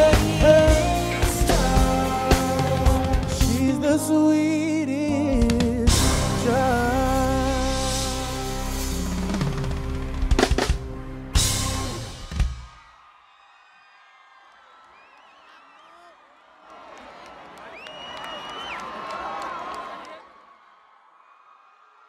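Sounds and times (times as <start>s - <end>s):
live band held chord: 0.0s - 12.6s
loud drum hits: 5.9s - 6.6s
crowd cheering: 8.7s - 22.0s.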